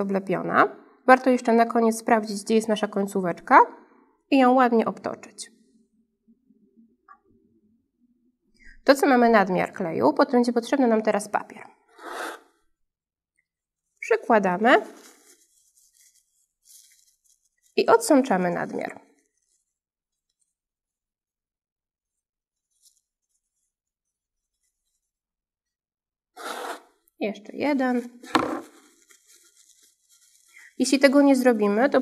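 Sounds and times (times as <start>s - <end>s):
paper towel rustling and tearing: 14.6s - 17.8s, 22.0s - 25.2s, 27.9s - 31.8s.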